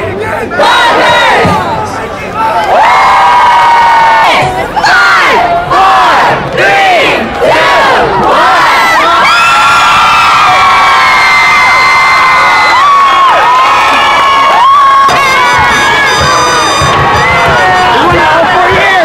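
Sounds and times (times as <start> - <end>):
crowd cheering and screaming: 2.4 - 5.8, 8.0 - 19.0.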